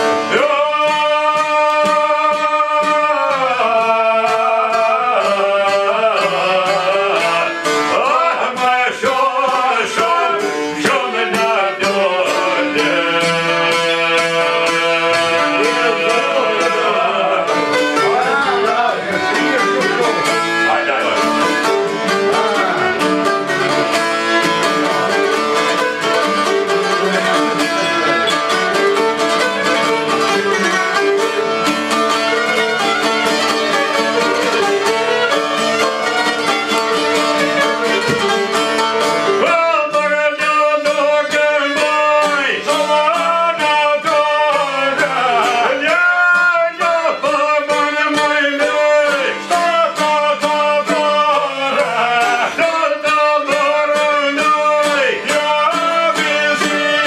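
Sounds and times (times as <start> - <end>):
man singing: 0.0 - 57.0
plucked lutes: 0.0 - 57.0
violin: 0.0 - 57.0.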